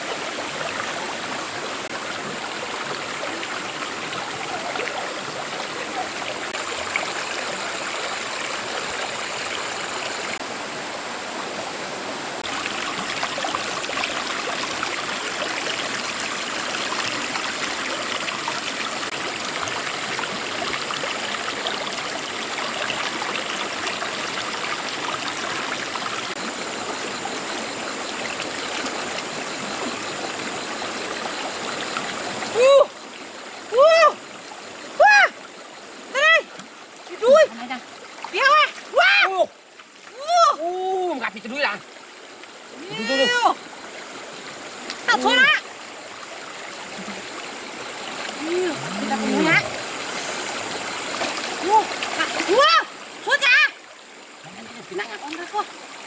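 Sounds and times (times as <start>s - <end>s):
water rushing over stones: 0.0s - 56.0s.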